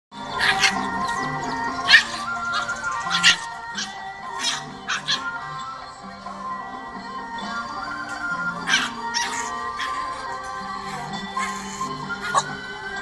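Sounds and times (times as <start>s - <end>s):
background music: 0.1s - 13.0s
dog yelps and barks: 0.2s - 5.7s, 8.2s - 13.0s.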